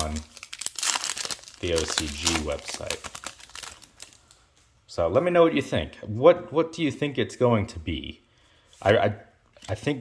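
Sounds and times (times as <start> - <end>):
foil wrapper crinkling: 0.0 - 4.4.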